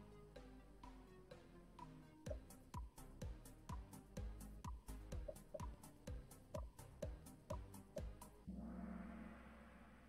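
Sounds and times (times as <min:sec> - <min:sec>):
quiz countdown music: 0:00.0 - 0:10.0.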